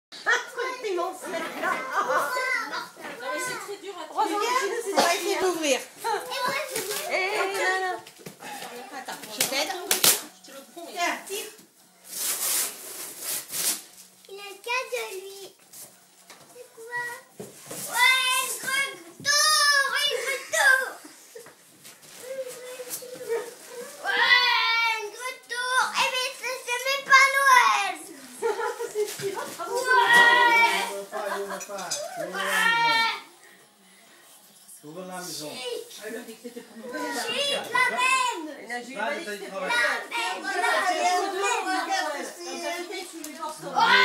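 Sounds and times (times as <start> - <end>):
young children talking and calling: 0.2 - 10.0, 16.4 - 21.5, 22.1 - 30.9, 36.8 - 38.7, 39.3 - 44.0.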